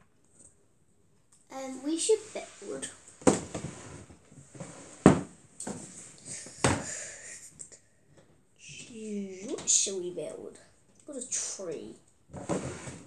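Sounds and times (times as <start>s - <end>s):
child's voice: 1.5s - 3.0s, 8.6s - 12.0s
drawer scraping and rattling: 3.2s - 6.0s, 12.3s - 13.0s.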